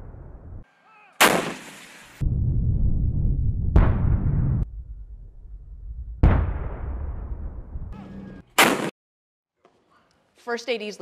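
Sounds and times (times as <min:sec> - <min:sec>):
tank gun shot echo: 0:01.2 - 0:02.0, 0:03.6 - 0:04.7, 0:06.2 - 0:07.7, 0:08.6 - 0:08.9.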